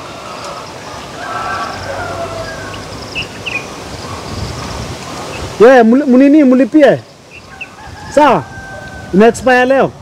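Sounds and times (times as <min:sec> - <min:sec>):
bird chirps: 0:00.3 - 0:05.5, 0:07.0 - 0:07.8.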